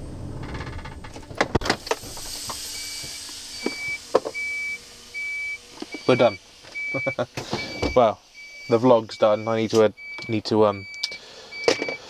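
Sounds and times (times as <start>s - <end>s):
truck engine running low: 0.0s - 10.1s
air brake hissing: 1.7s - 5.0s, 7.3s - 9.0s, 11.1s - 12.0s
high electronic warning beeps: 2.7s - 12.0s.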